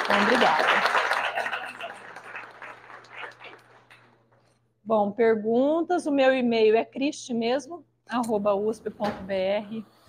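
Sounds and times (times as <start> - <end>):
audience applause: 0.0 - 4.0.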